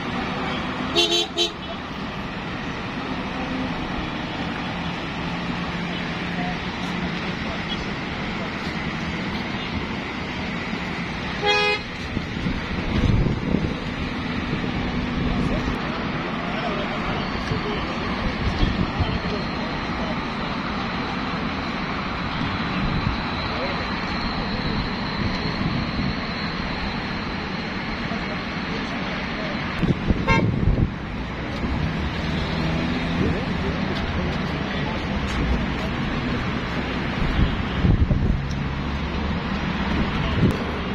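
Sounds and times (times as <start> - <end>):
crowd talking: 0.0 - 40.9
car horn toot: 0.9 - 1.8, 11.4 - 11.9, 30.2 - 30.6.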